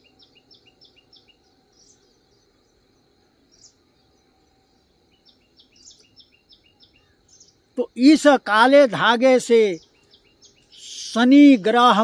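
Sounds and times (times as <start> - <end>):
faint bird chirps: 0.0 - 12.0.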